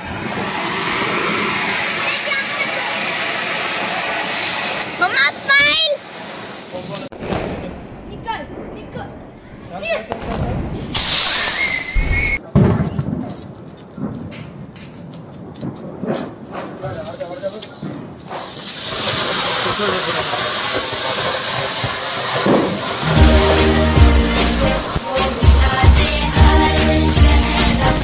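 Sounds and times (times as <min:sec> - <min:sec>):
firework whistle: 0:00.0 - 0:05.9, 0:10.9 - 0:12.4, 0:18.3 - 0:25.0
firework fountain hissing: 0:00.0 - 0:07.6, 0:09.8 - 0:12.4, 0:14.9 - 0:28.0
music with heavy beat: 0:23.0 - 0:28.0.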